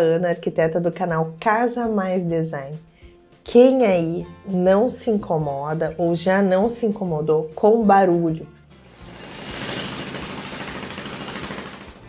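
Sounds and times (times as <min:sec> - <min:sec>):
rapid mechanical hammering: 0:09.3 - 0:12.0.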